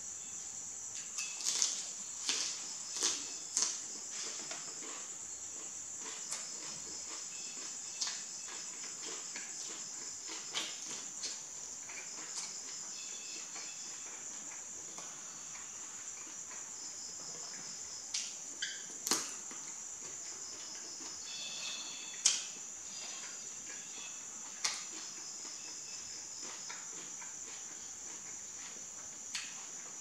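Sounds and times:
chewing clicks and crunches: 1.4s - 12.7s.

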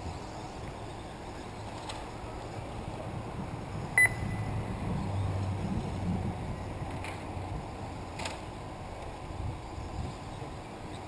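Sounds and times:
steady low rumble: 2.1s - 10.9s
short high electronic beep: 4.0s - 4.5s.

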